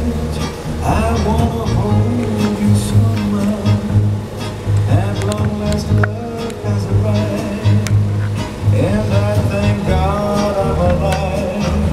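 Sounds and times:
dance organ playing a tune: 0.0s - 11.9s
steady bass beat: 0.0s - 11.9s.

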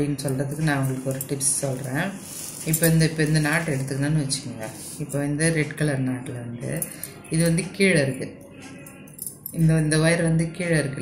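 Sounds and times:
woman speaking: 0.0s - 8.4s, 9.5s - 11.0s.

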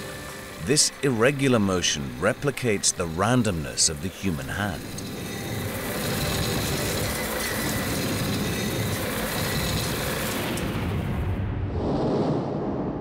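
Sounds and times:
grinding machine running: 0.0s - 11.3s.

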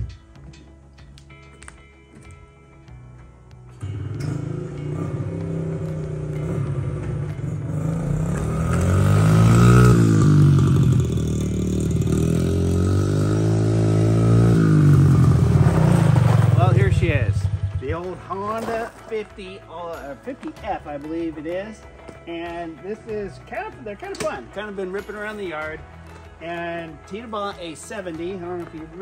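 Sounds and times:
small motorcycle engine revving: 3.8s - 17.9s.

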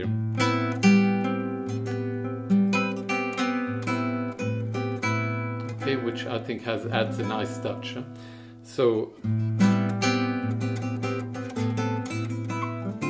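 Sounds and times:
fingerpicked classical guitar: 0.0s - 13.0s.

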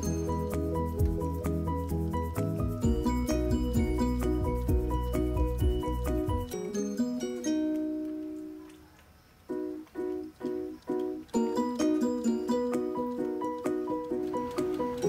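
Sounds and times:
plucked-string background music: 0.0s - 8.6s, 9.6s - 15.0s.

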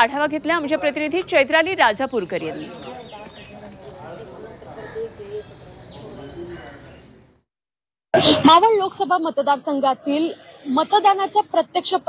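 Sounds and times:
faint chatter of people: 0.0s - 7.2s
birds chirping: 1.7s - 7.5s.

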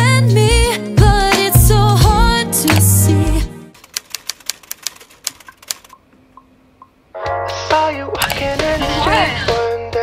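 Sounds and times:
rapid sharp clicks: 3.8s - 6.2s.

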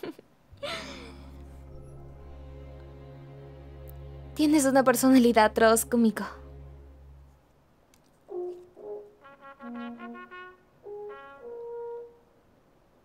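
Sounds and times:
brass instruments playing: 0.9s - 7.4s, 8.3s - 12.4s.

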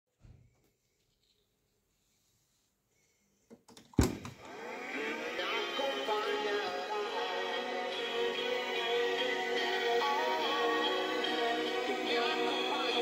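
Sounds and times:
music with singing from speakers: 4.9s - 13.0s.

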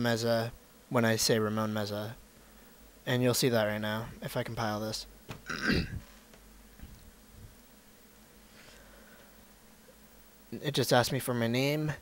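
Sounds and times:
man coughing: 5.4s - 6.0s.

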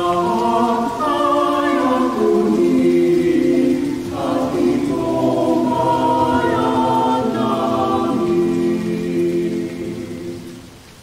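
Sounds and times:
choir singing a hymn: 0.0s - 10.7s.

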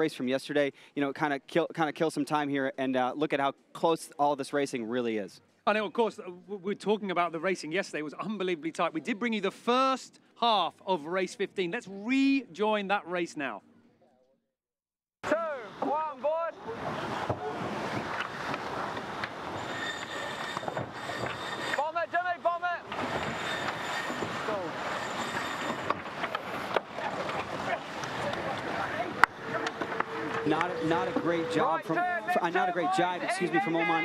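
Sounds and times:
wind and water rushing: 15.3s - 34.0s
crew voices calling out: 19.5s - 34.0s.

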